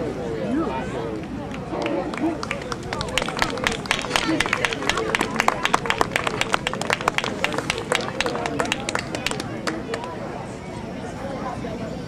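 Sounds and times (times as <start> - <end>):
people clapping: 1.2 - 10.2.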